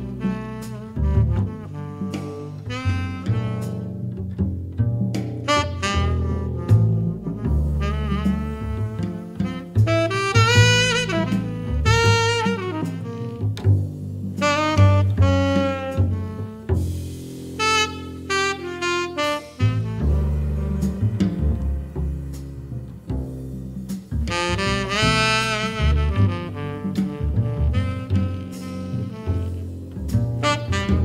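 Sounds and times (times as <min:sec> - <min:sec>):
tenor saxophone jazz ballad: 0:00.0 - 0:31.0
upright double bass: 0:00.0 - 0:31.0.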